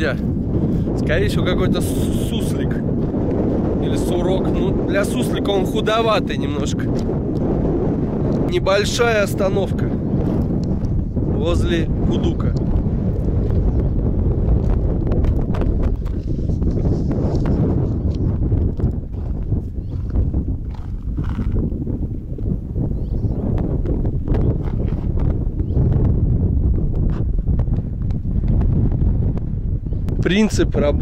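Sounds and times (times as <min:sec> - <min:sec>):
wind buffeting microphone: 0:00.0 - 0:31.0
footsteps on stony ground: 0:14.5 - 0:22.6, 0:24.3 - 0:25.4.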